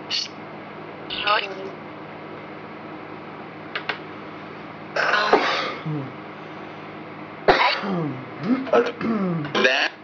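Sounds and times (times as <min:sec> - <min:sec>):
steady static hiss: 0:01.0 - 0:01.9
loud cough-like vocal sound: 0:05.0 - 0:05.9, 0:07.5 - 0:09.7.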